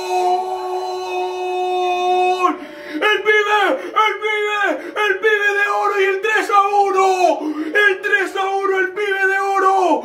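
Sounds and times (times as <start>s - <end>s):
young man screaming goal: 0.0s - 7.4s.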